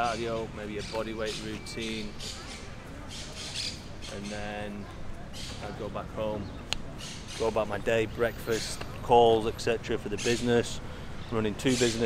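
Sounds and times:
bird squawking: 0.0s - 5.8s, 6.9s - 7.8s.

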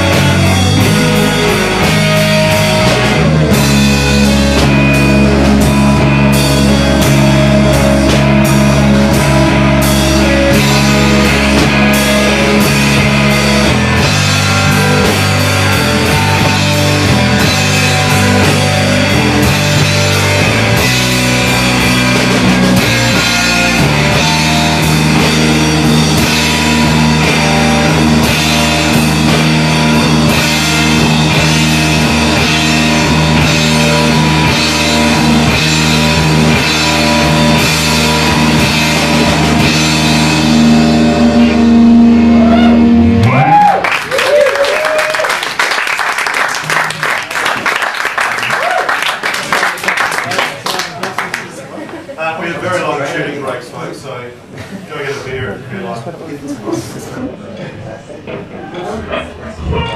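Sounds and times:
live rock band playing: 0.0s - 50.2s
audience clapping and cheering: 43.1s - 51.8s.

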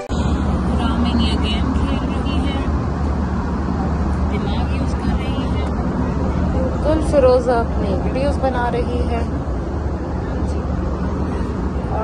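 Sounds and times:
aircraft cabin engine rush: 0.0s - 12.0s.

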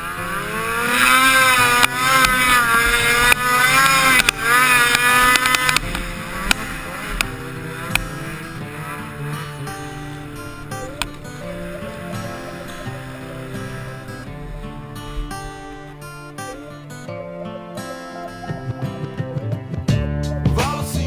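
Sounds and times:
snowmobile engine revving: 0.0s - 19.4s.

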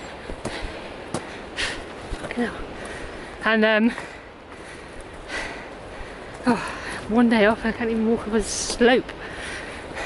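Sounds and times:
person breathing hard: 2.7s - 7.1s, 9.2s - 10.0s.

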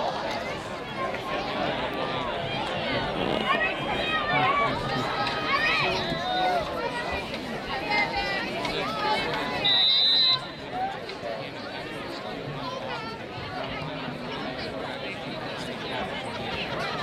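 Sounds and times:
chatter of players and spectators: 0.0s - 17.0s
referee's whistle blast: 9.6s - 10.6s.

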